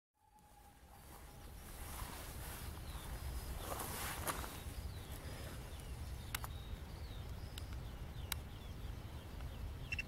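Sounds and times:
bird chirps: 0.2 - 10.0
wind rumbling on microphone: 0.4 - 10.0.

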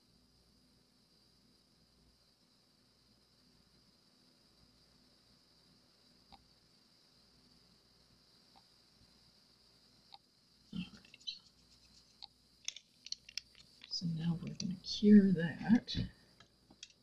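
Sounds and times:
small tools clicking and tapping: 10.9 - 14.8, 16.4 - 17.0.

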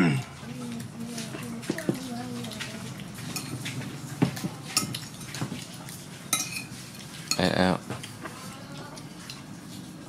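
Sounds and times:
spoons scraping on ceramic plates: 3.2 - 3.8, 6.3 - 7.6.

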